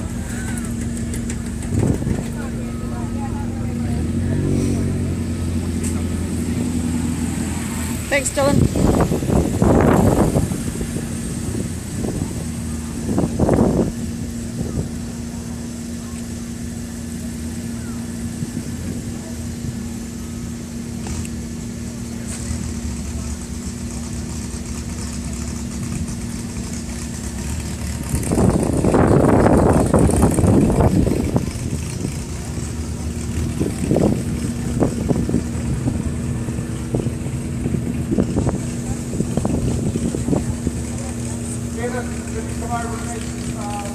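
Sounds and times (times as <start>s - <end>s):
car engine idling: 0.0s - 43.9s.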